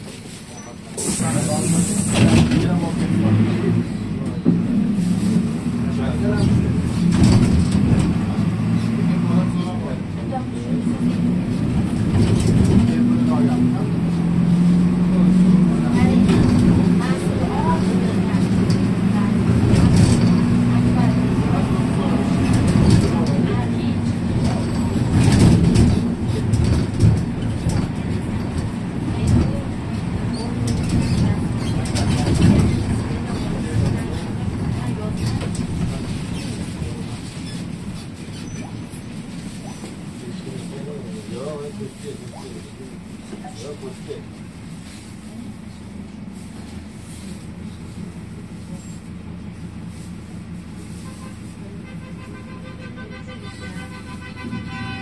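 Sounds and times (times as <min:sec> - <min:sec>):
bus engine running: 0:00.0 - 0:55.0
passengers talking: 0:00.0 - 0:55.0
rattles from bus body and windows: 0:00.0 - 0:55.0
road noise: 0:00.0 - 0:55.0.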